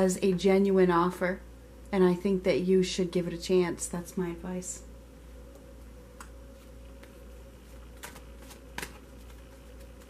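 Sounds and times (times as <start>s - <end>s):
cards shuffling with clicks: 6.2s - 10.0s.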